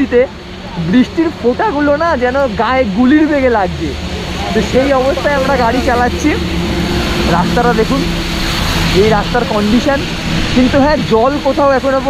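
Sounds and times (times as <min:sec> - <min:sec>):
man talking: 0:00.0 - 0:06.5, 0:07.2 - 0:08.2, 0:08.8 - 0:12.0
engine hum: 0:00.0 - 0:12.0
heavy rain hiss: 0:00.0 - 0:12.0.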